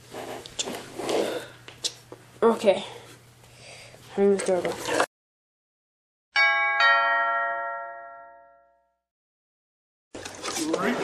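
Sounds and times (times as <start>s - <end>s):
two-note doorbell chime: 6.4s - 9.0s.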